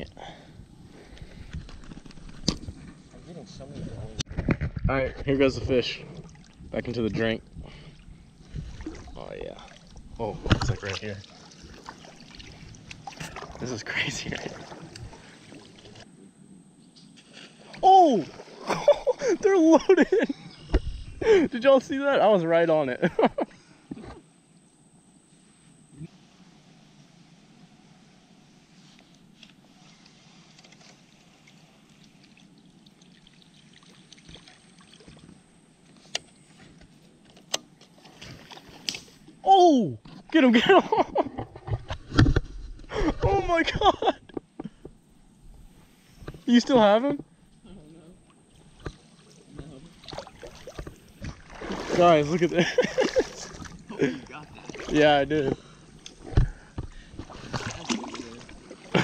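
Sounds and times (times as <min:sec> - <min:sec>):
water sloshing and splashing: 0:06.0 - 0:16.1, 0:17.2 - 0:20.2, 0:29.6 - 0:36.0, 0:37.8 - 0:39.4, 0:48.2 - 0:59.0.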